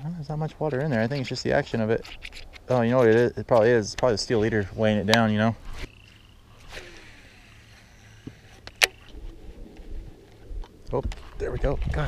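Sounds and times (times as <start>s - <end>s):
calm lake ambience: 0.0s - 12.0s
fishing reel clicks: 5.8s - 9.1s.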